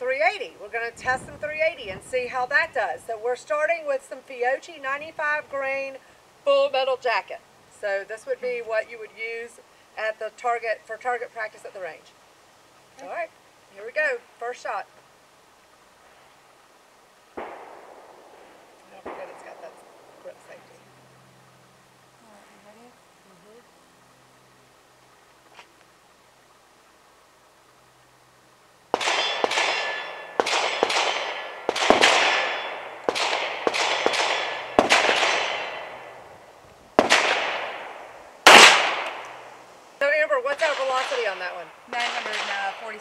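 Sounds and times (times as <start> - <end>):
gunshots with echoing tail: 17.4 - 20.3, 28.9 - 36.2, 37.0 - 39.4, 40.6 - 43.0.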